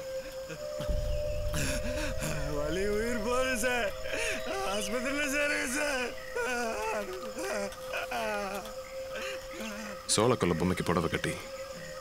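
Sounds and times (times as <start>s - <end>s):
low rumble: 0.8s - 6.4s.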